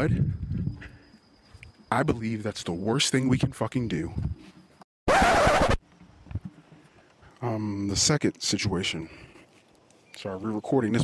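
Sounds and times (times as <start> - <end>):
loud scratchy noise burst: 5.1 - 5.8.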